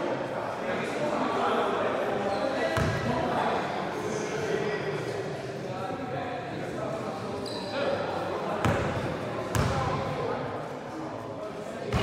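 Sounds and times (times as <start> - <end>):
voices echoing in hall: 0.0 - 12.0
basketball bouncing: 9.5 - 9.8.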